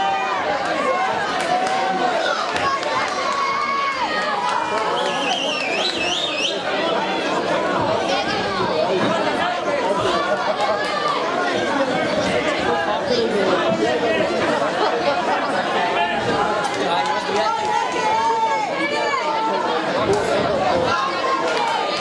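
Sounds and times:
crowd chattering and calling out: 0.0s - 22.0s.

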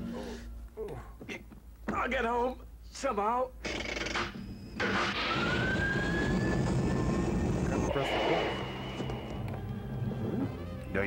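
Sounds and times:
spaceship engine whine: 4.8s - 10.7s
steady high tone: 5.2s - 10.2s.

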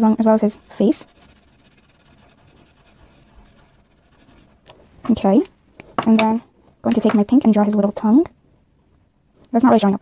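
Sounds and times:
marker scribbling on paper: 0.2s - 4.6s.

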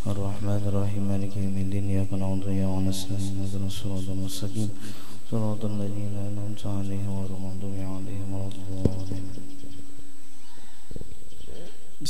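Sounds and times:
man chanting into a microphone: 0.0s - 9.5s.

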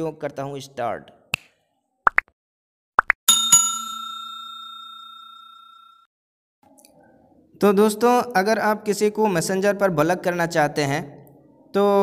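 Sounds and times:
bright bell chime ringing: 3.3s - 6.1s.

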